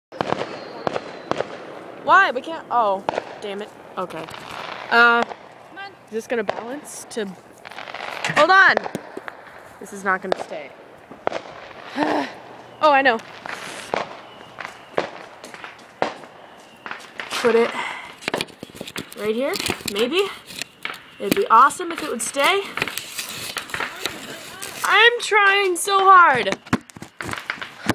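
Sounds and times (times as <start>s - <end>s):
firework pops: 0.2s - 1.7s, 3.0s - 9.6s, 10.2s - 12.5s, 13.1s - 25.7s, 26.3s - 27.9s.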